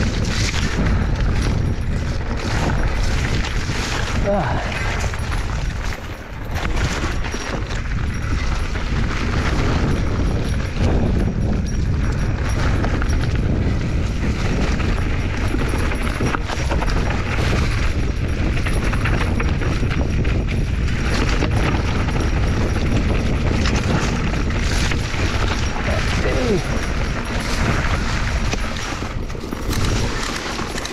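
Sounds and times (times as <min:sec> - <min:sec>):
bike rattling over loose rock: 0:00.0 - 0:30.9
wind rumble on microphone: 0:00.0 - 0:30.9.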